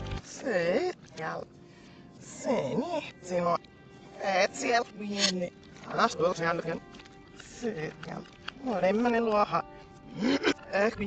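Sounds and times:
woman's voice played backwards: 0:00.2 - 0:01.6, 0:02.2 - 0:11.0.

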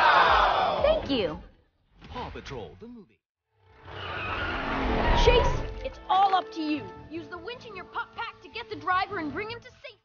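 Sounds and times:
rushing skidding road noise: 0:03.8 - 0:05.8.

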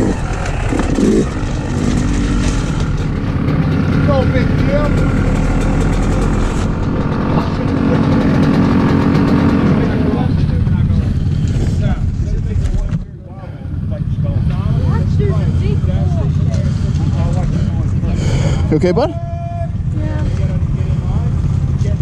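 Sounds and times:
dirt bike engine revving and idling: 0:00.0 - 0:19.0, 0:19.7 - 0:22.0
other dirt bikes idling: 0:00.0 - 0:22.0.

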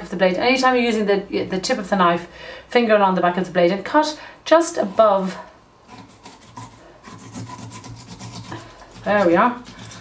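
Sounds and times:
knife slicing fish: 0:05.9 - 0:10.0.

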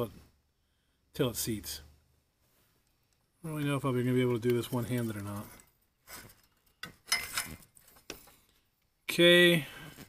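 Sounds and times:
metal tube clinking and scraping: 0:04.2 - 0:08.6.

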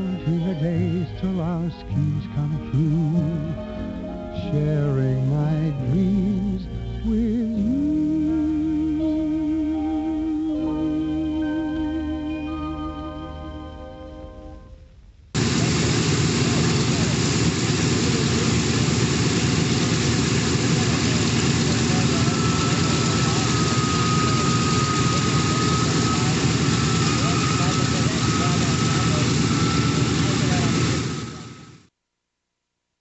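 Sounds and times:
propeller plane engines droning: 0:15.1 - 0:31.9.

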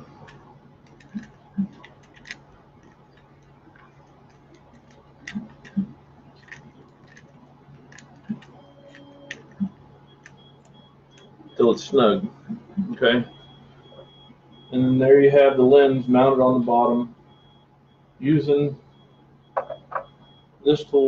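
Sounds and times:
steady low hum: 0:00.0 - 0:21.0
metal clicks and taps: 0:00.3 - 0:03.5.

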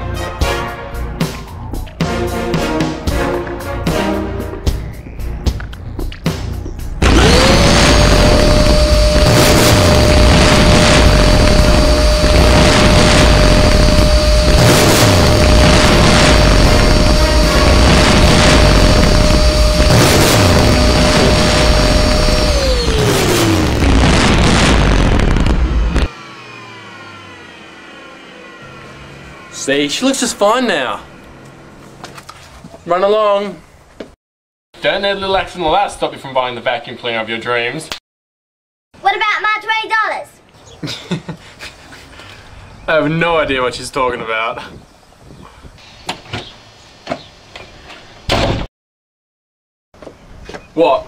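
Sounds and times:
music playing: 0:00.0 - 0:07.6
vacuum cleaner motor whining: 0:07.0 - 0:23.8, 0:26.0 - 0:29.7.

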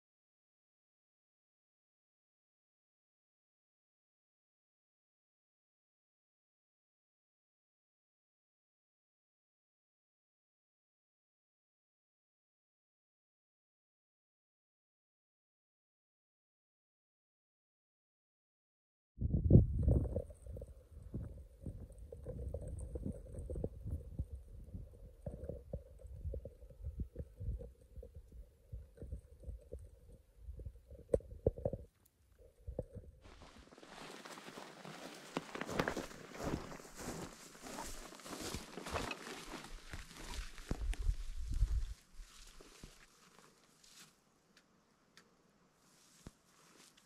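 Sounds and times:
wind buffeting microphone: 0:19.2 - 0:29.7, 0:40.7 - 0:42.0
crackling rustles: 0:33.3 - 0:44.7, 0:45.8 - 0:47.0.

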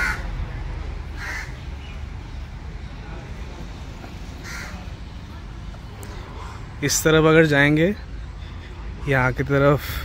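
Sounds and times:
bird harsh calls: 0:01.1 - 0:02.2, 0:04.4 - 0:04.9.

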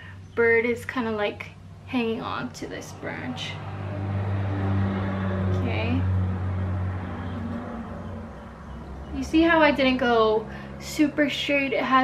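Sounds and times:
low droning hum: 0:00.0 - 0:12.0.

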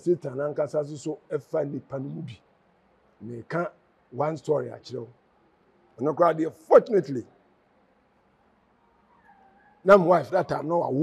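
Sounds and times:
man speaking: 0:00.0 - 0:02.4, 0:03.2 - 0:05.1, 0:06.0 - 0:07.3, 0:09.9 - 0:11.0.

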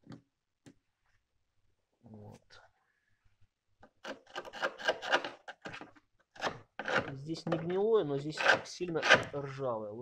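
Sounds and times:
metal tool scraping rusted metal: 0:06.4 - 0:09.6.

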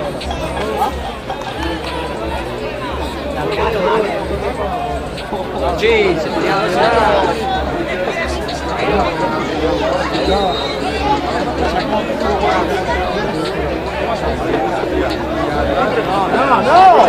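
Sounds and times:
people talking and calling out: 0:00.0 - 0:17.0.

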